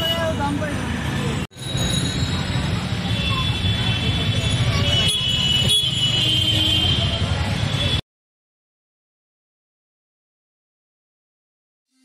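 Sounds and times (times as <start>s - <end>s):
road traffic rumble: 0.0s - 8.0s.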